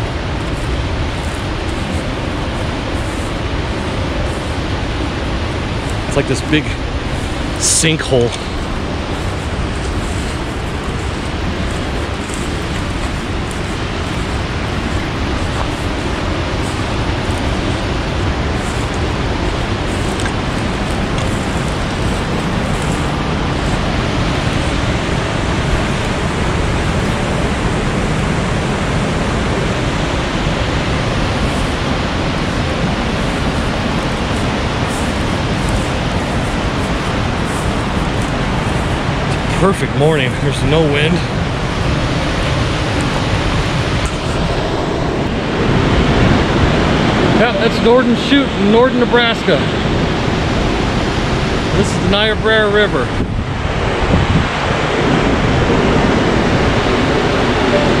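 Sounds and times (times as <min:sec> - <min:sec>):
river rapids rushing: 0:00.0 - 0:58.0.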